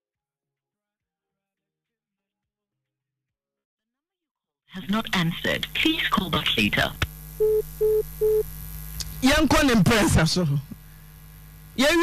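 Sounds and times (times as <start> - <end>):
faint steady hum: 4.8 - 12.0
short telephone beeps: 7.4 - 8.4.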